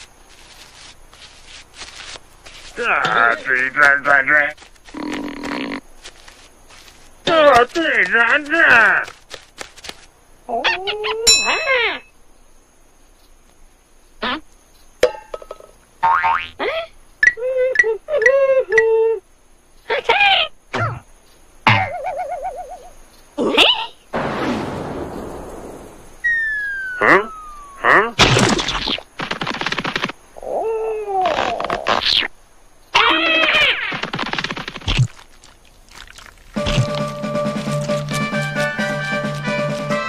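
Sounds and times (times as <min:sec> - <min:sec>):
falling whistle: 0:26.2 - 0:27.8.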